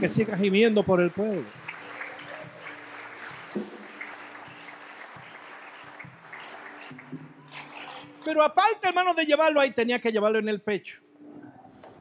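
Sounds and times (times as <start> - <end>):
congregation noise hiss: 0.0 - 9.3.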